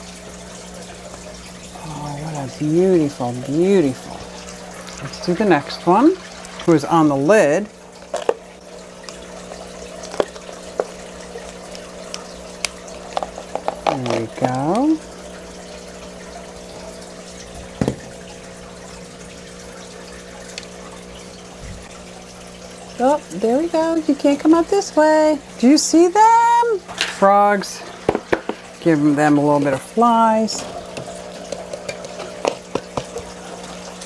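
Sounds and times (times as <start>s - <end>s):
water trickling: 0.0s - 34.0s
plastic cup tapping: 12.6s - 14.9s, 17.8s - 18.1s, 30.9s - 33.3s.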